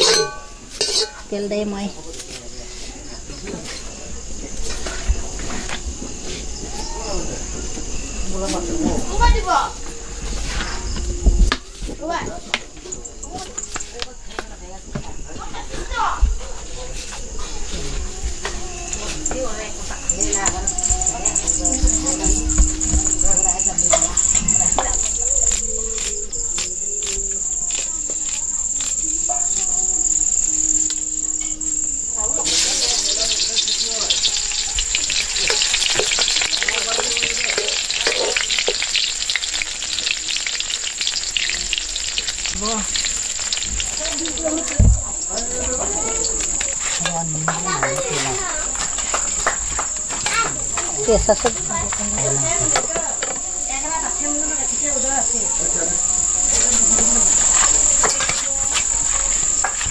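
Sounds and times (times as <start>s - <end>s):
metal spatula stirring: 0.0s - 1.2s, 32.4s - 44.4s
food sizzling in hot oil: 0.0s - 1.9s, 18.9s - 59.9s
crickets trilling: 0.0s - 59.9s.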